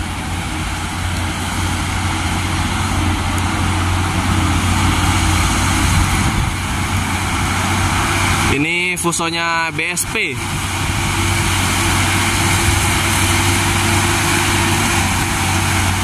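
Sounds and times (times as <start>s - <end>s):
truck diesel engine droning: 0.0s - 16.0s.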